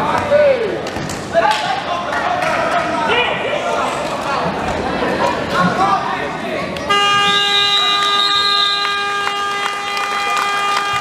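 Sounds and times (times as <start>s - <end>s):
scoreboard buzzer: 6.9s - 11.0s.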